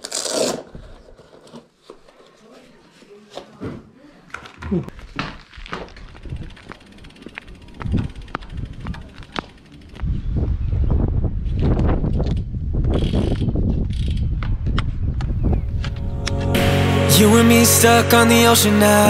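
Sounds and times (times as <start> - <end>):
wind and tyre noise: 5.0 - 16.5
bicycle clicks: 5.3 - 10.2, 11.4 - 16.0
music: 15.8 - 19.0.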